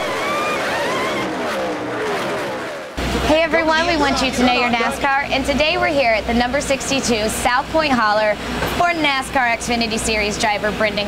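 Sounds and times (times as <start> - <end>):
race car engines passing: 0.0 - 5.0.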